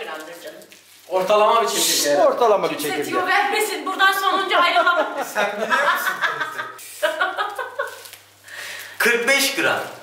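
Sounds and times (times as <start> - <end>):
person speaking: 1.1 - 6.7.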